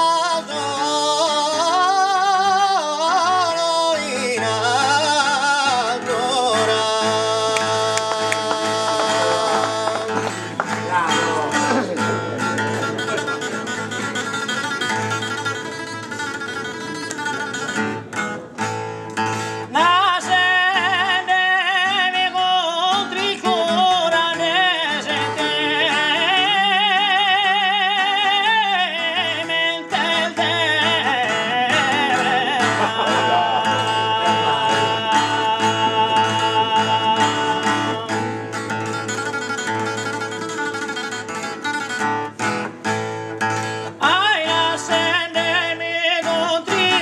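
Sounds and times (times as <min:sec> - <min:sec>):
acoustic guitar: 0:00.0 - 0:47.0
man singing with vibrato: 0:00.0 - 0:47.0.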